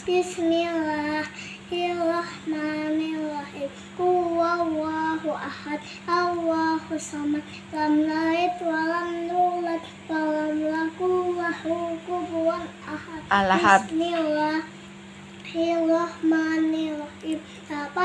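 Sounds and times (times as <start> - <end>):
girl chanting in sing-song melody: 0.0 - 14.8, 15.5 - 18.0
faint steady hum: 0.0 - 18.0.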